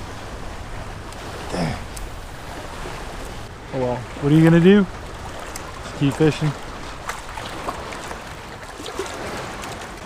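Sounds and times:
small water splashes: 0.0s - 10.0s
water lapping and sloshing: 0.0s - 10.0s.

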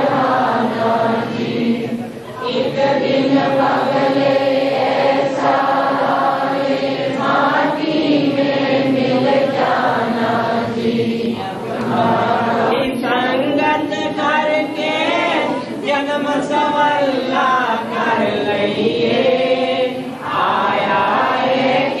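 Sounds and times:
group of voices chanting: 0.0s - 13.0s.

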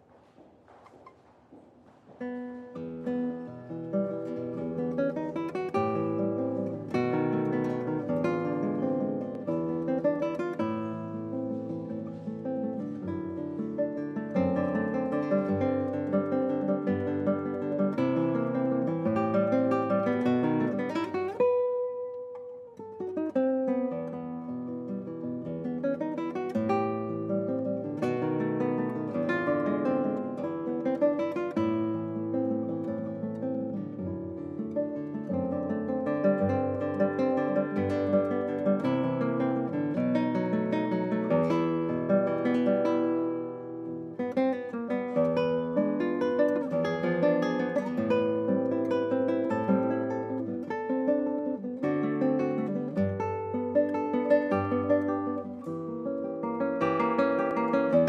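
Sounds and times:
fingerpicked classical guitar waltz: 0.0s - 58.0s.

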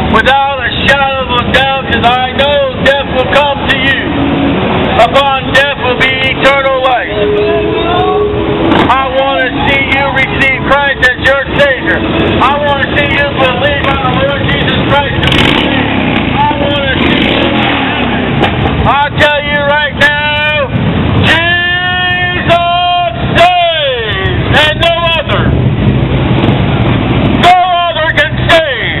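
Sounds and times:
preacher's loud voice: 0.0s - 4.2s, 4.9s - 17.2s, 18.8s - 25.6s, 27.4s - 29.0s
motorcycles and cars passing: 0.0s - 29.0s.

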